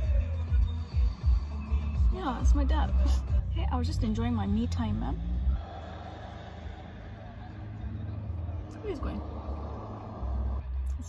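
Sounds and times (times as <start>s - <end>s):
vehicle passing by: 1.4s - 10.9s.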